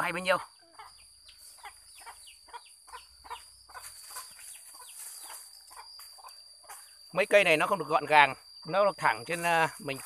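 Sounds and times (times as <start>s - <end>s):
birds chirping: 0.0s - 10.0s
steady high-pitched whine: 3.5s - 10.0s.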